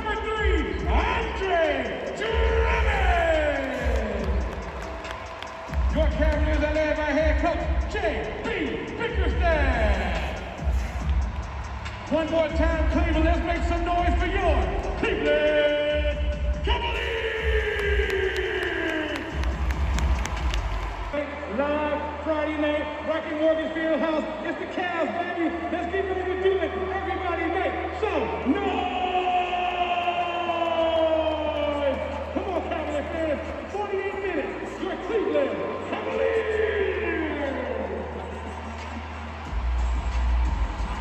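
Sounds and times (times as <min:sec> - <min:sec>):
voice over speakers: 0:00.0 - 0:05.0, 0:05.8 - 0:11.1, 0:12.0 - 0:19.7
bass-heavy music over speakers: 0:00.0 - 0:41.0.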